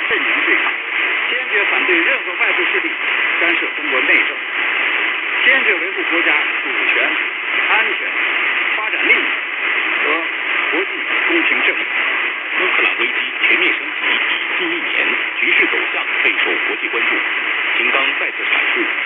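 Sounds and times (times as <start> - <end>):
muffled voice on radio: 0.0 - 4.6, 5.2 - 19.0
radio static: 0.0 - 19.0.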